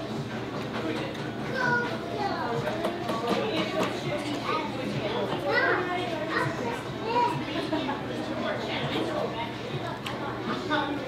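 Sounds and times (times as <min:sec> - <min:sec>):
children talking and playing: 0:00.0 - 0:11.0.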